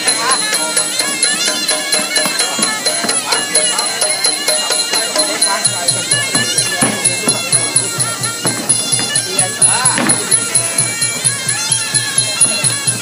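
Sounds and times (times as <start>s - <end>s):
fast drum beat: 0.0s - 13.0s
reedy oboe melody: 0.0s - 13.0s.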